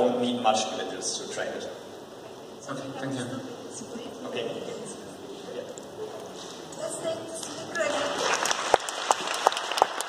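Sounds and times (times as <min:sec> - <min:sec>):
audience applauding: 0:07.8 - 0:10.0
loud individual claps: 0:08.0 - 0:10.0.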